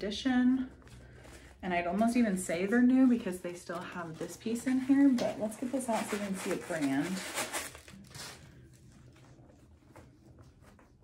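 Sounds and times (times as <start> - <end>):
paper rustling and crinkling: 3.6 - 11.0.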